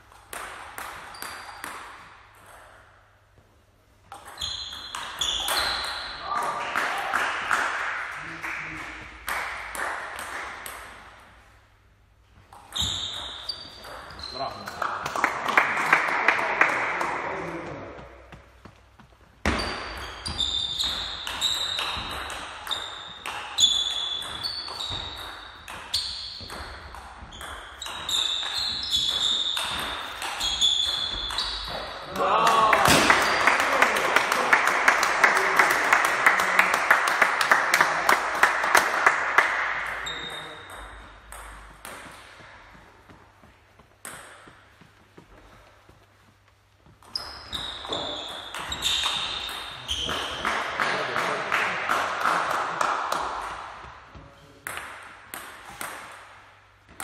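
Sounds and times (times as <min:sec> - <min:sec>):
shoes squeaking on wooden floor: 0:17.7 - 0:26.5, 0:27.2 - 0:32.1, 0:45.0 - 0:50.4.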